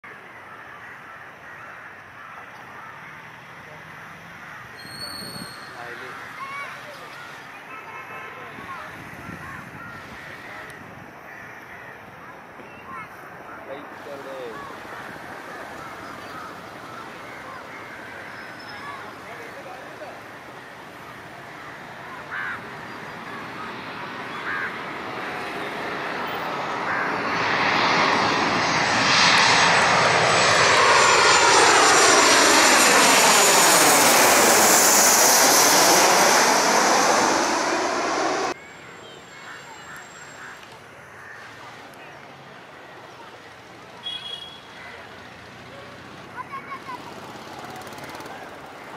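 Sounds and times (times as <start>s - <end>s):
crows cawing: 0.1s - 3.8s, 4.4s - 4.8s, 5.8s - 8.0s, 8.8s - 12.4s, 13.4s - 19.7s, 21.4s - 23.7s, 24.3s - 38.6s, 39.3s - 41.6s, 44.7s - 45.1s
jet airliner passing overhead: 13.3s - 40.7s, 46.6s - 48.9s
high engine whine: 23.2s - 38.6s.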